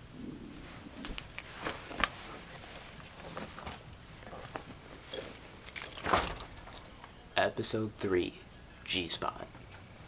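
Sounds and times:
rustling handling noise: 0.6s - 7.1s
metallic jingle: 5.1s - 6.5s.

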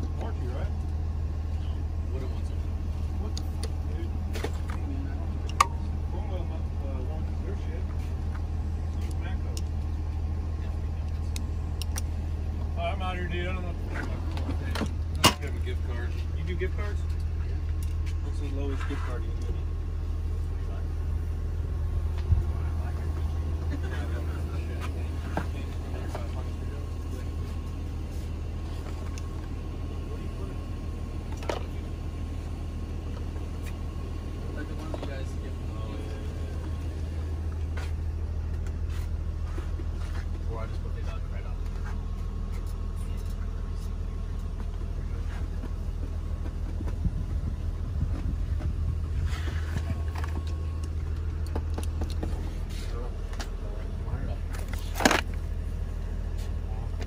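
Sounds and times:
engine droning: 0.0s - 57.0s.

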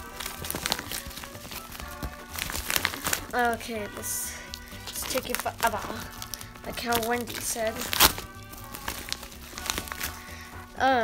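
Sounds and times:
padded mailer crinkling and tearing: 0.0s - 10.8s
background music: 0.0s - 11.0s.

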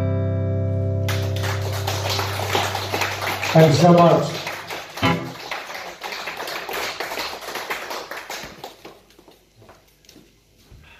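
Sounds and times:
audience applause: 1.1s - 9.4s.

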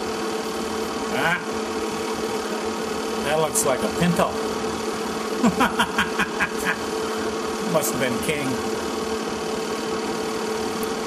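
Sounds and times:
steady low hum: 0.0s - 11.0s
person laughing: 5.4s - 6.9s.

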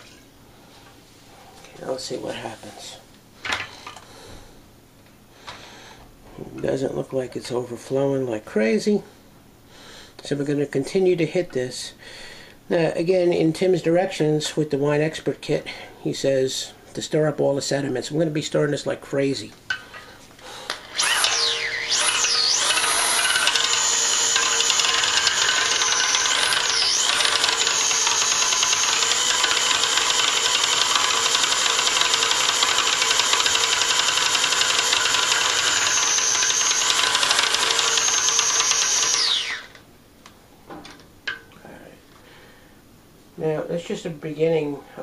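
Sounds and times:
electric drill whining: 20.7s - 39.8s.

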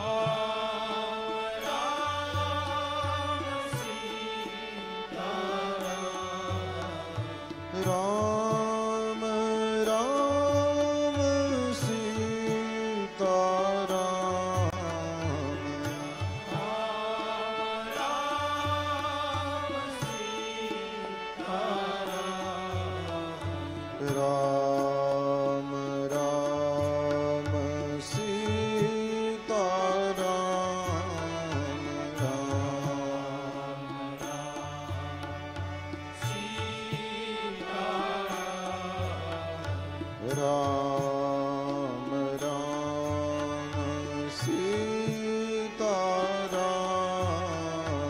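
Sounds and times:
person singing devotional song: 0.0s - 48.0s.

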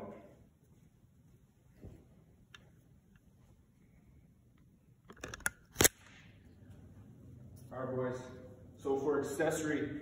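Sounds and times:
camera handling clicks and knocks: 5.0s - 5.9s
sharp loud click: 5.2s - 6.3s.

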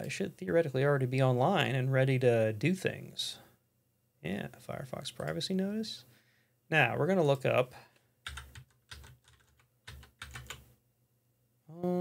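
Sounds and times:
typing on computer keyboard: 8.2s - 10.6s.

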